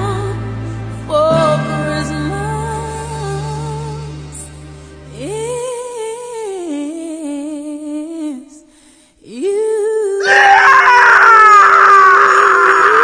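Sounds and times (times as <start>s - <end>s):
man screaming: 10.2s - 13.0s.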